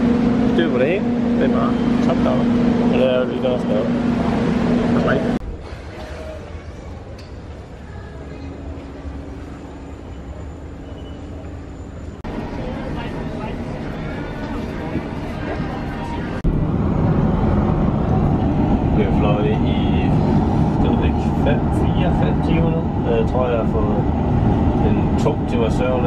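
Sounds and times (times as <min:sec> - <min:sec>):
airliner cabin rumble: 0:00.0 - 0:26.0.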